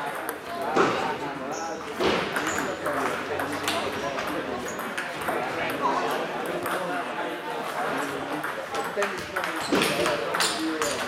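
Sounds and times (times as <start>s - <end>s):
murmur of voices: 0.0s - 11.0s
table tennis balls ticking: 2.3s - 7.0s, 8.0s - 11.0s.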